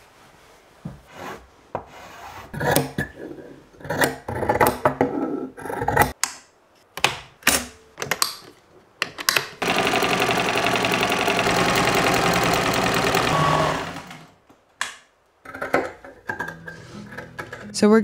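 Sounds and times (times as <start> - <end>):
electric sewing machine running: 9.6 - 14.4.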